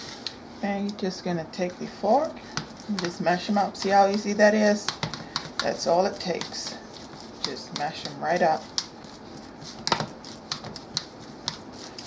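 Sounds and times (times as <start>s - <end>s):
fork mashing bananas: 0.7s - 12.0s.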